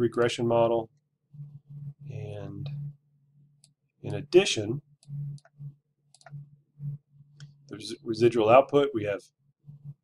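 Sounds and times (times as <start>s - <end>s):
computer mouse clicking: 5.0s - 6.4s.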